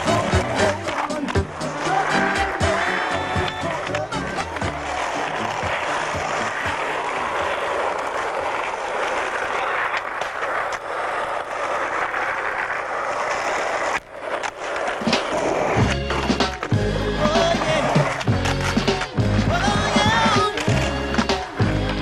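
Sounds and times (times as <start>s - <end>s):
skateboard clicks: 0.0s - 22.0s
skateboard wheels on asphalt: 0.0s - 22.0s.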